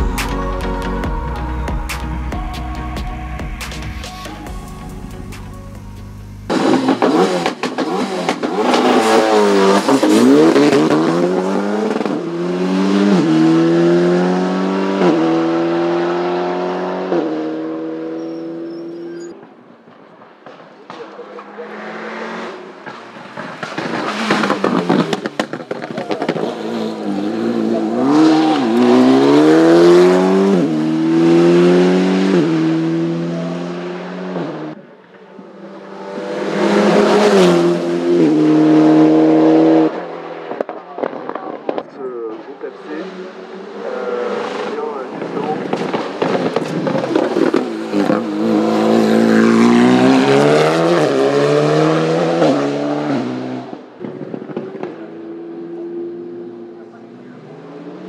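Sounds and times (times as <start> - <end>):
race car engine accelerating: 3.6 - 19.5, 21.0 - 34.8, 35.4 - 58.0.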